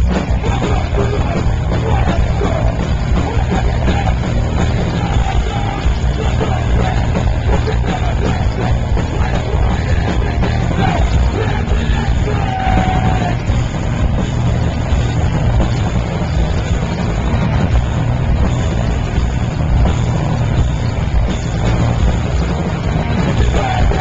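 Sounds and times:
punk band playing live: 0:00.0 - 0:24.0.

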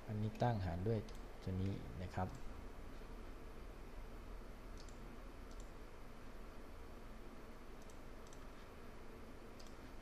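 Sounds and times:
low background hiss: 0:00.0 - 0:10.0
computer mouse clicks: 0:04.7 - 0:05.8, 0:07.8 - 0:08.6, 0:09.5 - 0:09.9.

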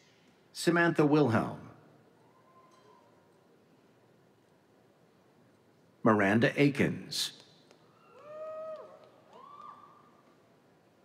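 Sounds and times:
faint high-pitched whoops: 0:02.2 - 0:03.3, 0:07.9 - 0:10.2.

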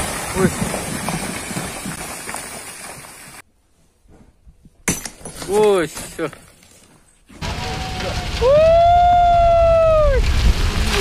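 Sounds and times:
earth and rock sliding: 0:00.0 - 0:03.5, 0:05.2 - 0:11.0
person shouting woooo: 0:07.4 - 0:10.2.

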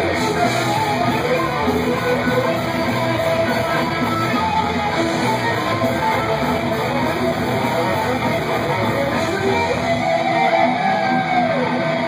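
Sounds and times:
distorted electric guitars: 0:00.0 - 0:12.0
heavy metal band playing live: 0:00.0 - 0:12.0.

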